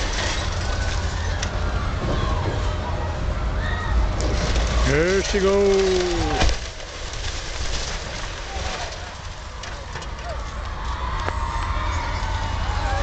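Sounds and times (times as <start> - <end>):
falling rubble and timber clattering: 0.0 - 2.2, 4.2 - 10.5.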